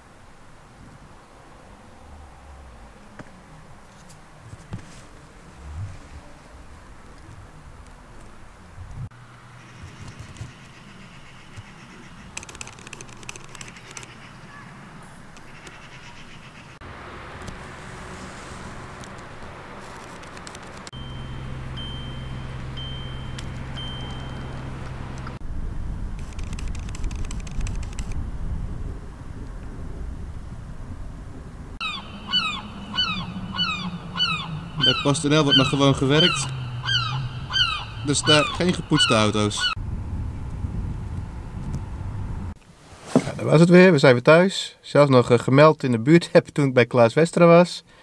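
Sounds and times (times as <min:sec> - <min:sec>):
outdoor background noise: 0:00.0 - 0:48.0
low rumble: 0:00.9 - 0:03.9, 0:05.1 - 0:09.1, 0:20.9 - 0:26.4, 0:27.8 - 0:42.6
steady low hum: 0:28.2 - 0:43.4
bird chattering call: 0:31.8 - 0:39.8.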